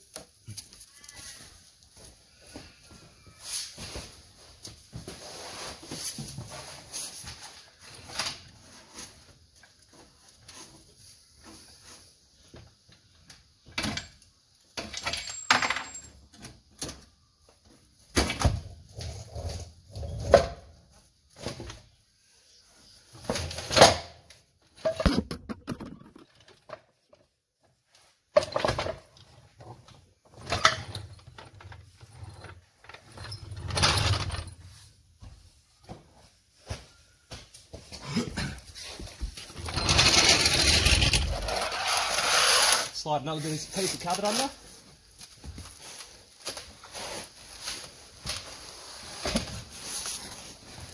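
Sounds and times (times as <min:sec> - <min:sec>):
scraping on concrete floor: 0:03.4 - 0:12.4, 0:37.8 - 0:50.9
continuous scraping: 0:38.6 - 0:50.9.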